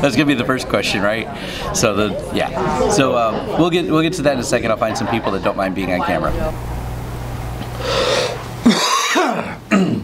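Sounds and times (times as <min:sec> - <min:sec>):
man's throaty vocal noises: 0:07.7 - 0:10.0.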